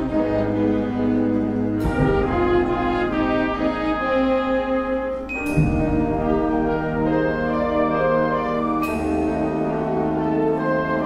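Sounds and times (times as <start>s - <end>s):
band playing brass chords: 0.0s - 11.0s.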